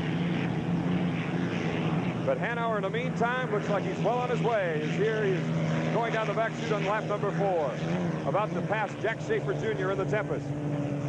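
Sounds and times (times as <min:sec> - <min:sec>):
racing boat engine drone: 0:00.0 - 0:11.0.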